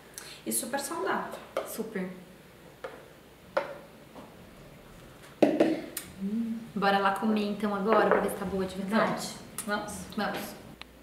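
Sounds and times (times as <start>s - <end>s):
ceramic bowls knocking on tile: 7.9s - 8.4s.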